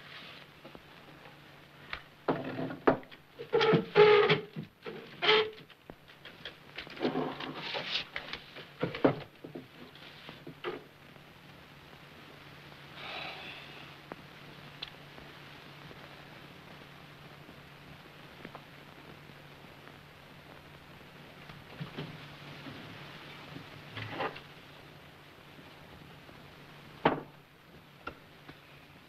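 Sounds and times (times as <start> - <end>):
steady low hum: 5.7 - 29.0.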